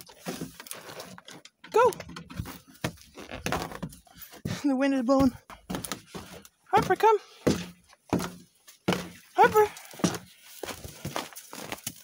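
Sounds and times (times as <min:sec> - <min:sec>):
rustling handling noise: 0:00.0 - 0:12.0
person giving spoken command: 0:06.7 - 0:07.2, 0:09.4 - 0:09.8.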